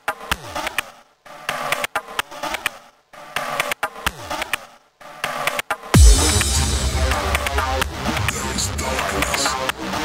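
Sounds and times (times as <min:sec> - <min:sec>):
buzzing synth: 0:06.0 - 0:10.0
low falling synth sweep: 0:06.0 - 0:10.0.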